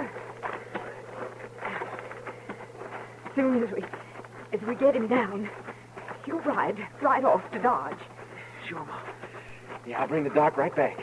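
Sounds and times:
low recording hum: 0.0s - 11.0s.

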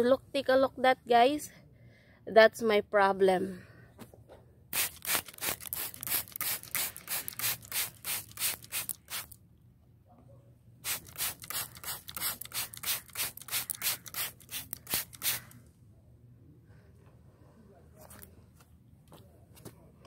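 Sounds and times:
spray bottle spritzing: 4.7s - 9.4s, 10.8s - 15.6s.

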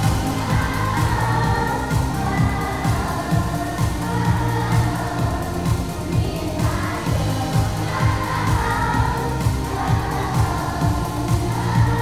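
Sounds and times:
children's choir singing: 0.0s - 12.0s
instrumental accompaniment with beat: 0.0s - 12.0s.

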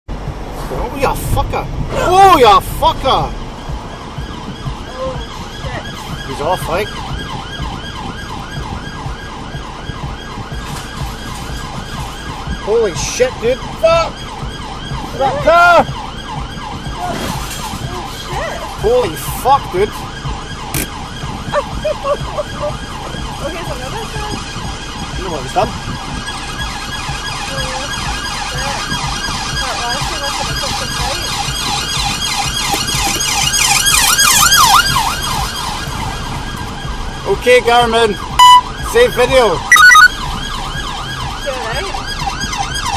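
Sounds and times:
police siren yelping: 2.0s - 42.9s.

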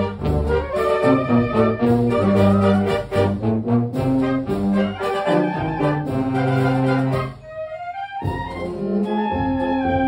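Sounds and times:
wind band playing a march: 0.0s - 10.0s.

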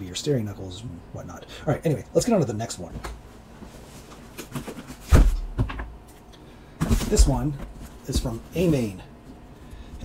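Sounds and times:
cardboard box knocks and rustles: 4.6s - 5.9s
cardboard box thumping on workbench: 5.0s - 5.9s.

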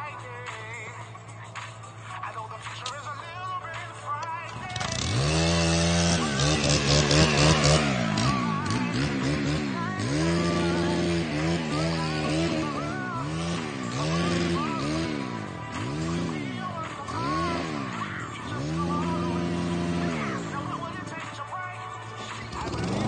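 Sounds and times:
string trimmer engine revving: 4.5s - 21.4s, 22.2s - 23.0s.

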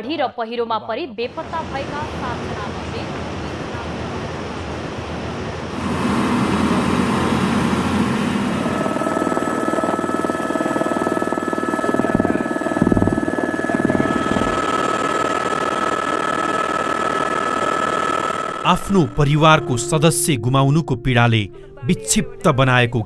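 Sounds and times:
helicopter rotor beat: 5.7s - 20.1s
helicopter turbine whine: 5.7s - 20.5s.

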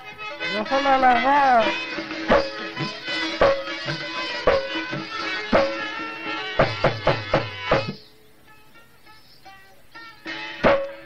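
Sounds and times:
held instrumental note: 0.0s - 8.7s, 10.2s - 11.0s.

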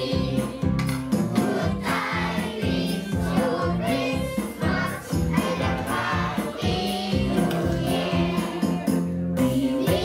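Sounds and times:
children singing together: 0.0s - 8.9s, 9.5s - 10.0s
backing track with steady beat: 0.0s - 10.0s.

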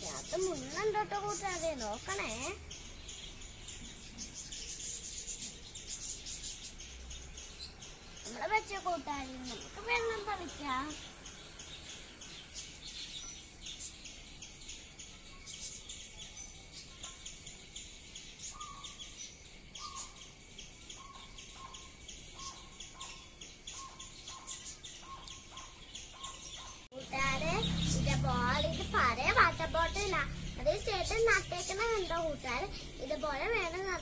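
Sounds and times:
high insect drone: 0.0s - 34.0s
rapid high chirping: 0.0s - 34.0s.

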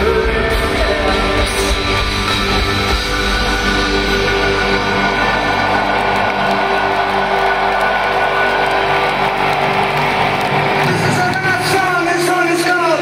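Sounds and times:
crowd cheering: 0.6s - 13.0s.

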